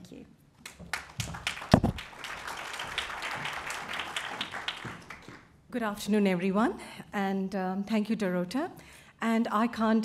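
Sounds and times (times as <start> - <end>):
audience applauding: 0.7 - 5.5.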